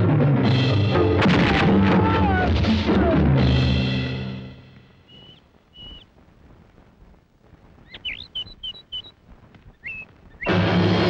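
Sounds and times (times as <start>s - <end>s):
bird chirping: 5.0s - 6.1s, 7.8s - 10.6s.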